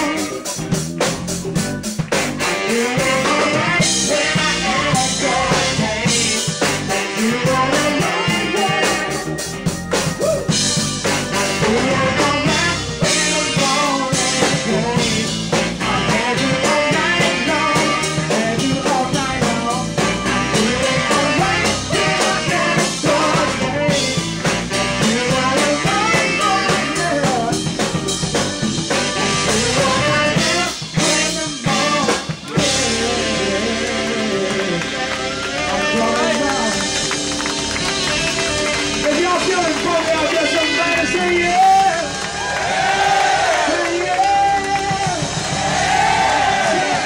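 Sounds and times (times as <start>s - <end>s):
lead vocal singing: 0.0s - 0.8s, 2.4s - 28.3s, 29.0s - 37.3s, 42.7s - 47.0s
bass guitar: 0.0s - 47.0s
drums: 0.0s - 47.0s
saxophones playing: 0.0s - 47.0s.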